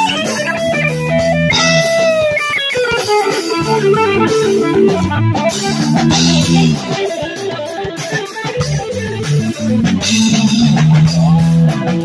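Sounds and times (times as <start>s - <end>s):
drum kit with cymbal hits: 0.0s - 12.0s
electric guitar melody: 0.0s - 12.0s.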